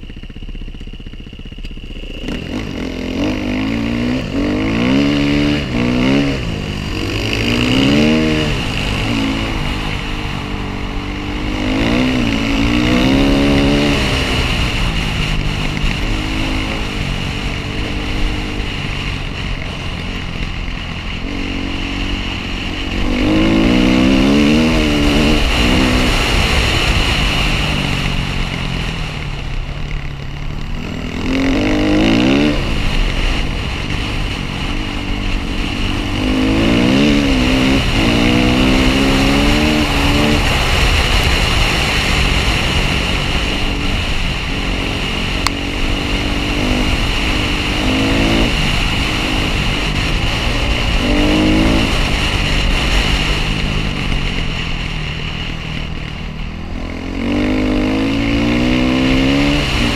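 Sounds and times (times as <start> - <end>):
dirt bike engine revving: 0.0 - 59.9
steady rush of noise: 0.0 - 59.9.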